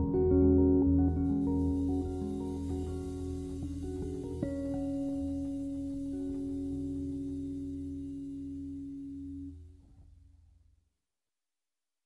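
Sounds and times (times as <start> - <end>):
jazz guitar chord ringing: 0.0 - 9.8.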